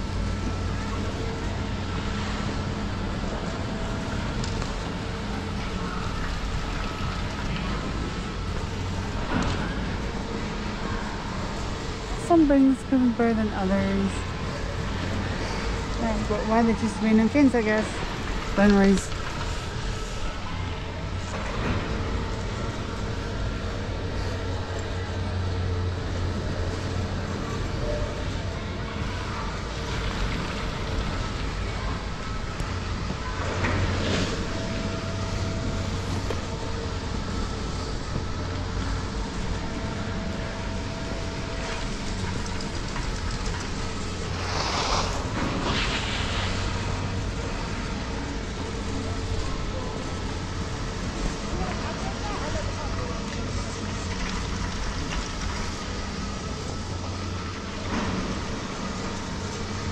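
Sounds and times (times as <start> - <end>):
low machinery hum: 0.0 - 59.9.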